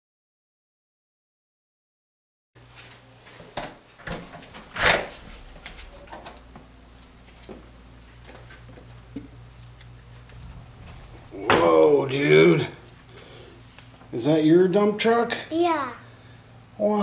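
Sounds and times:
low steady hum: 0:02.6 - 0:17.0.

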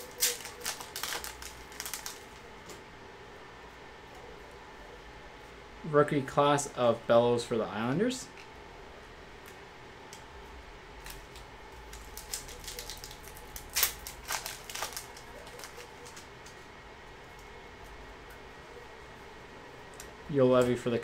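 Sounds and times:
foil wrapper crinkling and tearing: 0:00.0 - 0:02.4, 0:11.0 - 0:16.3
faint room hum: 0:00.0 - 0:21.0.

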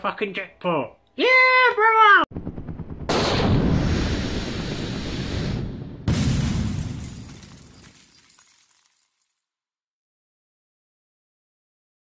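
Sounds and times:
bullet flight effect: 0:02.4 - 0:04.9
glass shattering impact: 0:06.1 - 0:09.4.

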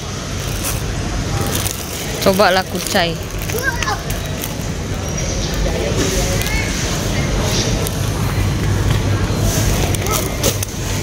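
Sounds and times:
faint voices of shoppers: 0:00.0 - 0:11.0.

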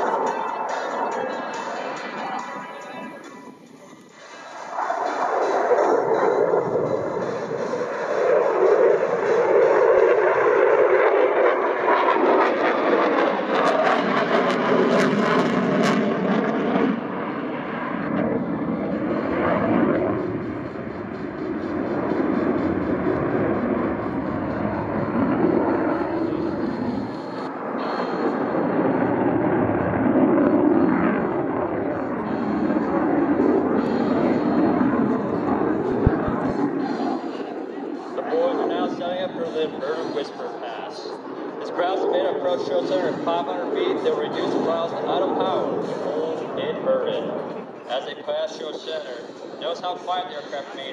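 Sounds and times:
jet engine roar: 0:00.0 - 0:50.9.

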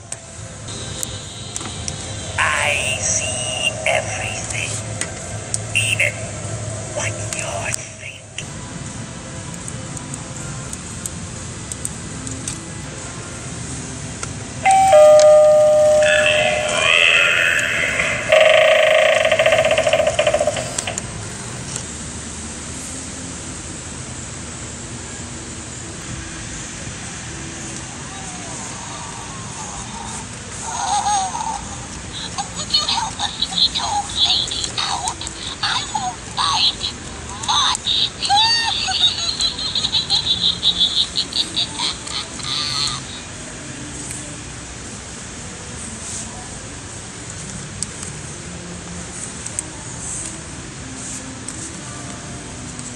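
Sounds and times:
wavering spooky sound effect: 0:02.4 - 0:04.9, 0:14.7 - 0:21.1
two-note ding-dong chime: 0:14.7 - 0:21.0.

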